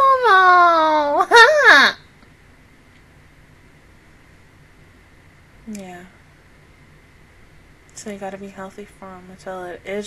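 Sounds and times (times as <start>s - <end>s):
high-pitched vocal cry: 0.0s - 2.0s.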